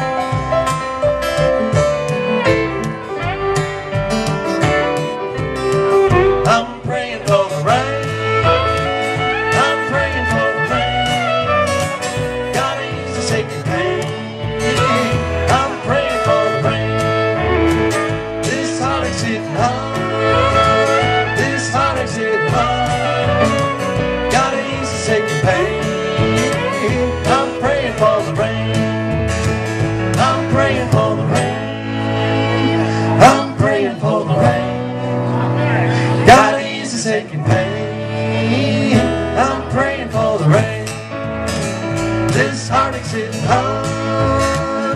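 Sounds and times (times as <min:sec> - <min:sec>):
lead line with sliding notes: 0:00.0 - 0:07.2, 0:07.9 - 0:39.7
bluegrass band playing: 0:00.0 - 0:44.9.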